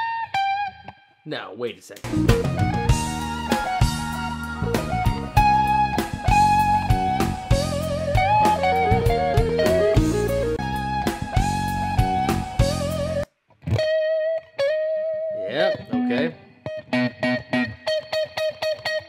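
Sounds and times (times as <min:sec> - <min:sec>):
electric guitar lead with band: 0:00.0 - 0:01.2, 0:02.0 - 0:19.0
lone electric guitar: 0:02.0 - 0:19.0.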